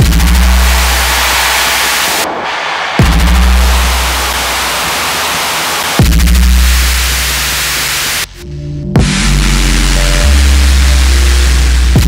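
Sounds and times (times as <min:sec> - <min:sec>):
low bass drone: 0:00.0 - 0:02.4, 0:03.0 - 0:12.0
dense white noise wash: 0:00.0 - 0:08.4.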